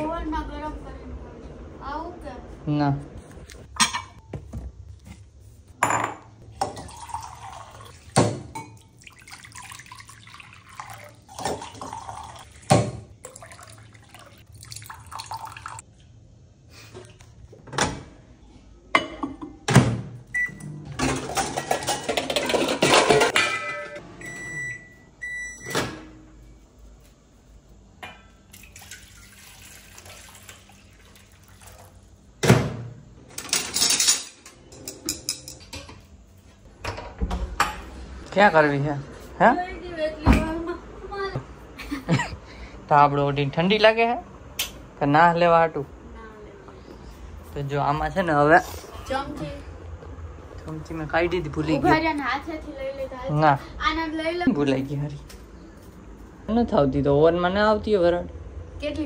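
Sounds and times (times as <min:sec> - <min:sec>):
water running: 0:06.4 - 0:16.0, 0:28.4 - 0:32.3
microwave oven humming: 0:17.4 - 0:22.2, 0:23.1 - 0:28.9, 0:31.6 - 0:59.0
cutlery clattering in drawer: 0:21.0 - 0:24.0, 0:33.3 - 0:35.9.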